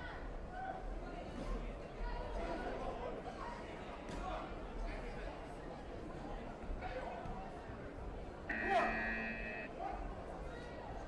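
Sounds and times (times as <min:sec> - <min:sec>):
murmur of voices: 0:00.0 - 0:11.0
electronic buzzer: 0:08.5 - 0:09.7.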